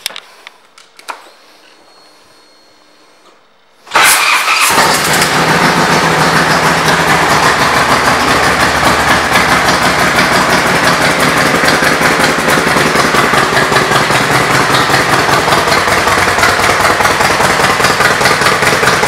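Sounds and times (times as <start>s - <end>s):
motorcycle engine idling: 4.2s - 19.0s.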